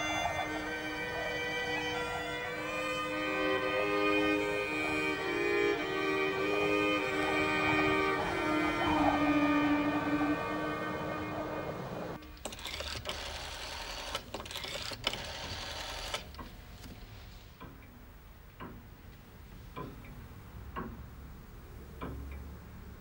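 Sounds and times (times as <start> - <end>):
orchestral string music: 0.0 - 13.2
clock ticking slowly: 0.0 - 23.0.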